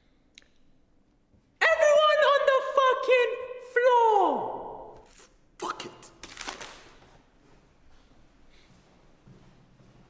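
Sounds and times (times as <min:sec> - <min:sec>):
man yelling and groaning: 0:01.6 - 0:04.8.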